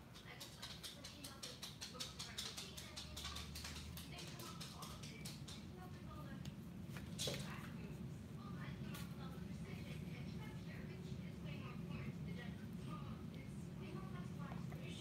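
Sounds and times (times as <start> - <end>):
rapid light clicking and tapping: 0.0 - 6.6.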